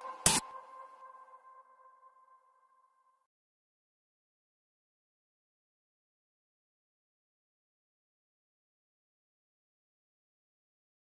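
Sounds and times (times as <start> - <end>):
electronic noise burst: 0.2 - 0.4.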